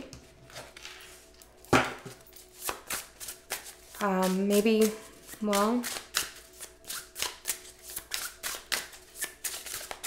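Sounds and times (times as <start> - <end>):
cards being handled: 2.4 - 10.0.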